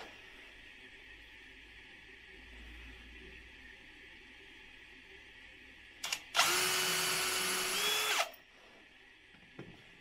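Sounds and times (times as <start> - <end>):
cordless drill drilling into wood: 6.4 - 8.4.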